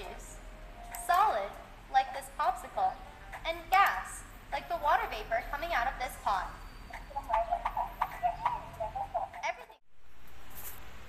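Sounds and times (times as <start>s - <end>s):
bouncy cartoon music on laptop speakers: 7.0s - 9.8s.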